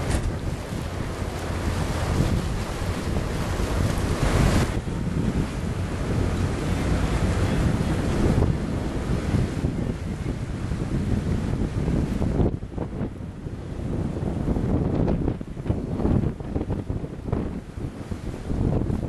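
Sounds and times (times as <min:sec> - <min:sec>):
water rushing: 0:00.0 - 0:19.0
wind buffeting microphone: 0:00.0 - 0:19.0.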